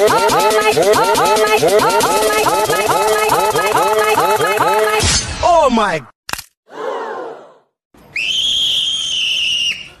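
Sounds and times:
high whistle-like tone: 8.1s - 10.0s.

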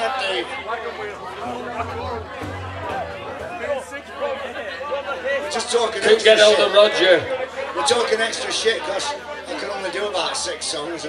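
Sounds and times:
audience chatter: 0.0s - 9.8s
low amplified instrument note: 1.4s - 4.7s.

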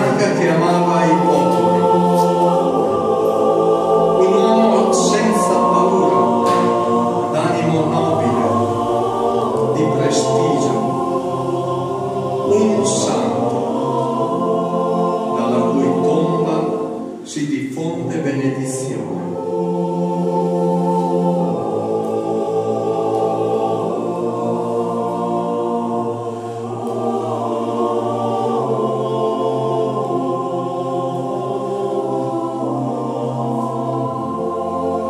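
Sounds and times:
a cappella choir singing: 0.0s - 35.0s.

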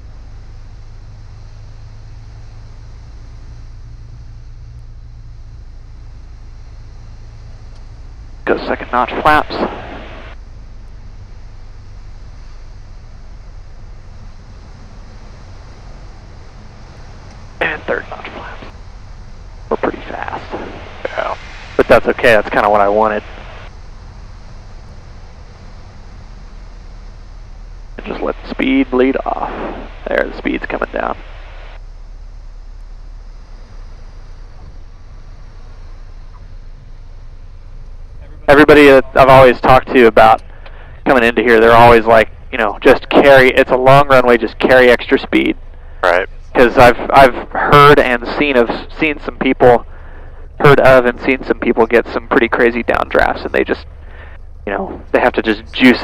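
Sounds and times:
light aircraft engine drone: 0.0s - 56.0s
voices over intercom: 8.5s - 10.3s, 17.6s - 18.7s, 19.7s - 23.3s, 28.0s - 31.2s, 38.2s - 56.0s
rush of airflow: 8.9s - 10.4s, 19.5s - 24.9s, 28.0s - 31.8s.

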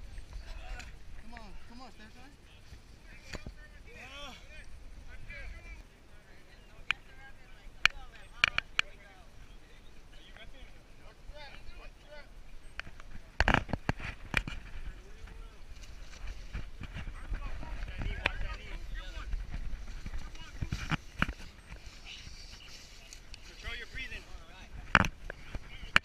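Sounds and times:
camera handling rumble and scuffing: 12.8s - 23.5s.

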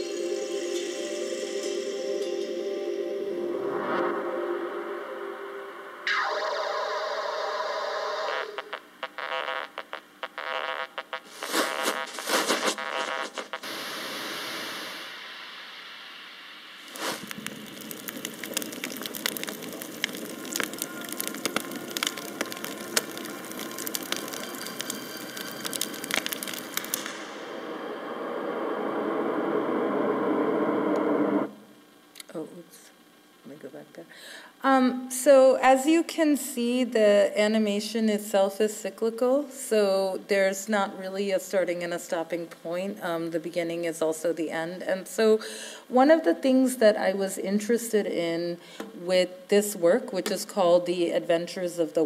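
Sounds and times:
musical tones: 0.0s - 8.8s
sound effects: 0.0s - 9.9s
dense crackle: 6.0s - 31.6s.

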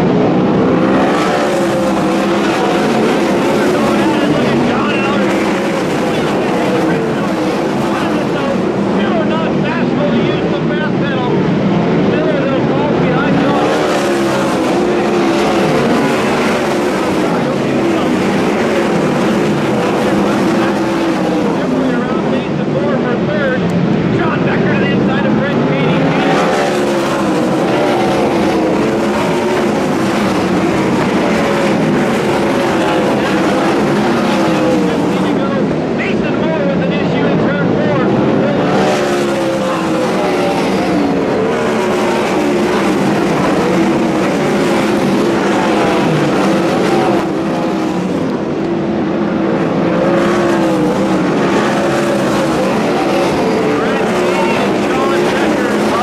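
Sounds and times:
race car engines racing: 0.0s - 56.0s.

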